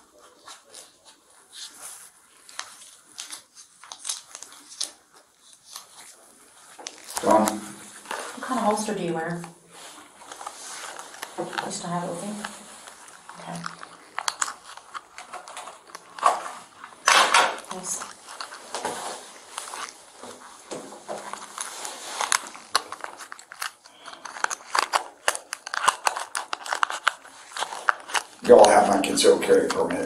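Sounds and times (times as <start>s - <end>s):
glove rubbing: 0.0s - 30.0s
plastic packet crinkling: 0.0s - 30.0s.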